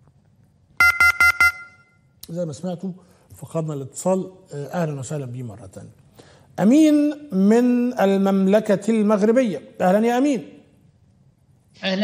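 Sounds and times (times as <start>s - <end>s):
quick telephone beeps: 0.8s - 2.0s.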